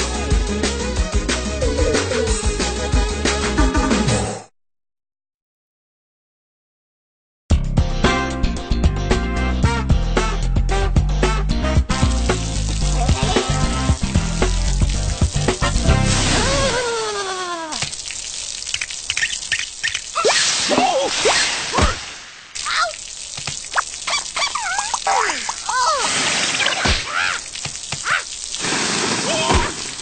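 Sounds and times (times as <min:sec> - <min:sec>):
cartoon background music: 0:00.1 - 0:04.4, 0:07.8 - 0:16.8
hissing water spray: 0:12.0 - 0:30.0
wordless cries and grunts: 0:12.9 - 0:13.8, 0:16.4 - 0:17.8, 0:24.7 - 0:26.2.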